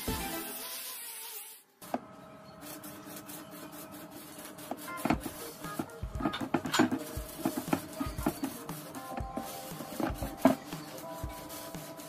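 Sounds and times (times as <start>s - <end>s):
angle grinder sanding steel: 2.7s - 12.0s.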